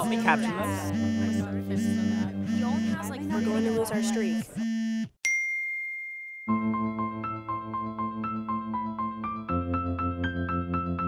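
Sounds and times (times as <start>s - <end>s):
keyboard music: 0.0s - 5.1s, 6.5s - 11.0s
bright ding: 5.2s - 6.6s.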